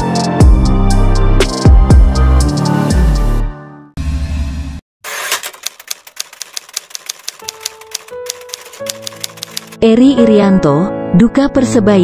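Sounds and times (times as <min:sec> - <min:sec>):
typewriter key clicks: 0:05.2 - 0:09.8
soft background music: 0:07.5 - 0:12.0.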